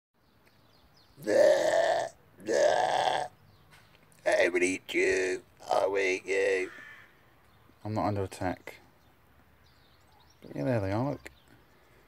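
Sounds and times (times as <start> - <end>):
person making wordless vocal noises: 1.2 - 3.3, 4.2 - 6.8.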